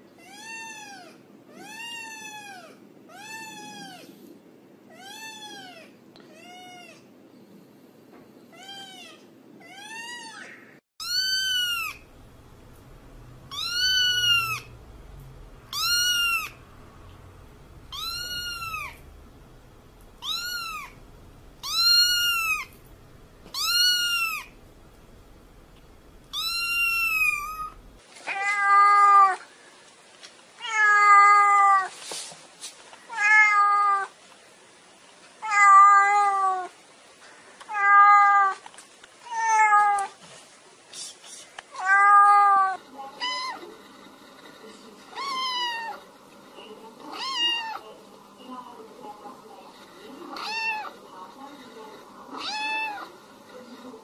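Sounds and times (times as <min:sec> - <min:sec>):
cats meowing: 0:00.2 - 0:04.1, 0:08.5 - 0:12.1, 0:13.5 - 0:14.8, 0:15.7 - 0:17.0, 0:17.8 - 0:19.2, 0:20.2 - 0:21.0, 0:21.6 - 0:22.8, 0:23.5 - 0:24.6, 0:26.3 - 0:29.4, 0:30.6 - 0:31.9, 0:33.1 - 0:34.1, 0:35.4 - 0:36.7, 0:37.6 - 0:38.6, 0:39.2 - 0:40.2, 0:41.7 - 0:43.6, 0:45.1 - 0:46.0, 0:47.0 - 0:47.8, 0:50.4 - 0:51.0, 0:52.4 - 0:53.1.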